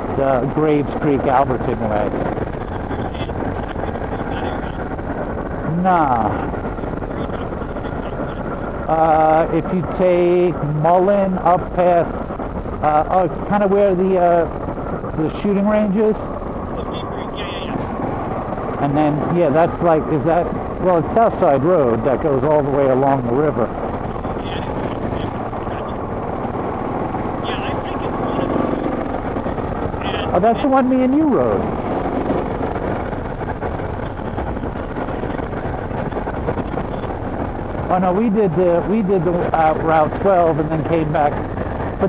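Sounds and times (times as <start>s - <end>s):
motorcycle engine cruising: 0.0s - 42.0s
wind rush on microphone: 0.0s - 42.0s.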